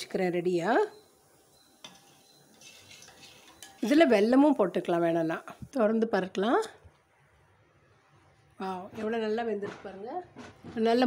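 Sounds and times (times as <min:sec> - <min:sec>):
spoon stirring in metal pot: 0:01.8 - 0:04.8.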